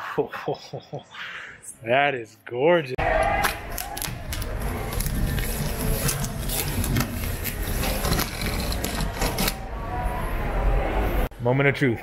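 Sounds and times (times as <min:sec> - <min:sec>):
cardboard scraping and rustling: 0:04.3 - 0:09.6.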